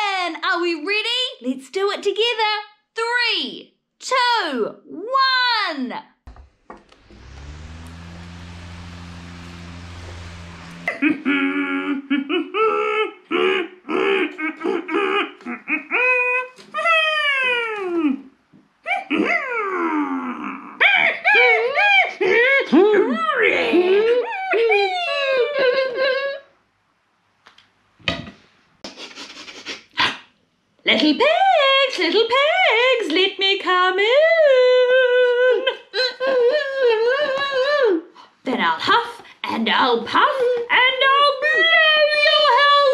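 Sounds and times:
person laughing: 10.8s - 18.2s
woman singing wordlessly: 30.9s - 35.7s.

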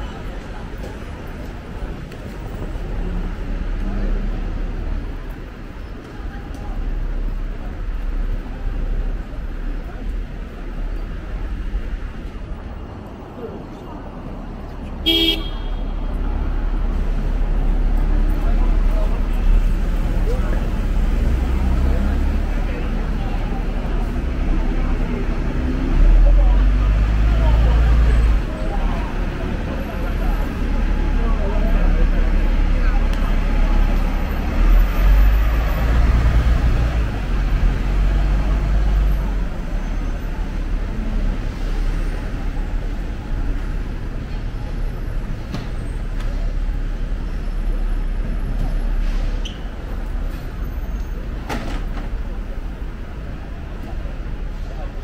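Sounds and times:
buses and taxis passing: 0.0s - 55.0s
chatter of passers-by: 0.0s - 55.0s
heavy vehicles rumbling: 0.0s - 55.0s.

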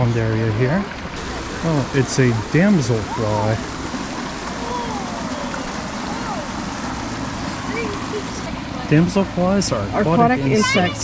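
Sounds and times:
faint distant voices: 1.2s - 11.0s.

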